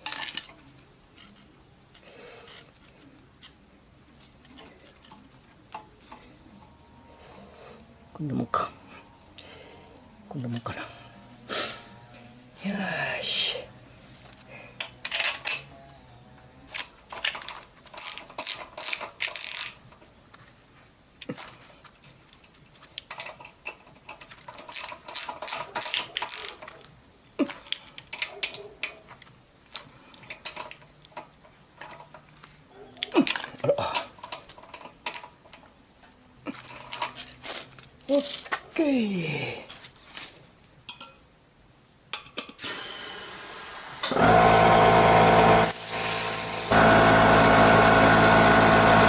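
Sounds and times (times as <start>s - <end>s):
metallic clicks of hand tools: 14.8s - 15.7s, 22.4s - 26.9s, 29.7s - 32.2s
ratchet wrench clicking: 17.2s - 19.8s.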